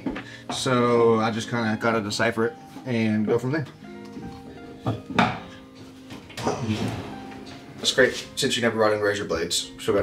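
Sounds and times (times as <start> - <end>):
quiet guitar music: 0.0 - 10.0.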